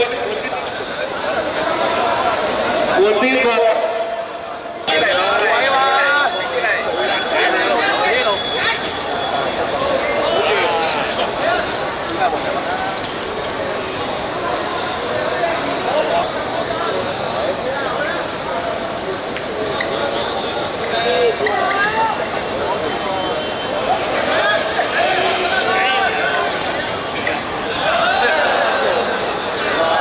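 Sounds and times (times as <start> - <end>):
voices shouting and calling out: 0.0 - 30.0.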